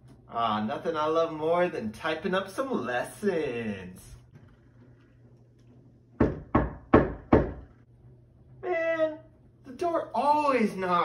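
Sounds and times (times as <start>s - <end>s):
knocking on a door: 6.2s - 7.7s.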